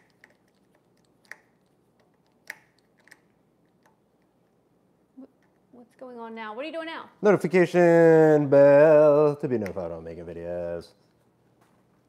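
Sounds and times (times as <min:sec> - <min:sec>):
small sharp clicks and taps: 0:00.0 - 0:04.3.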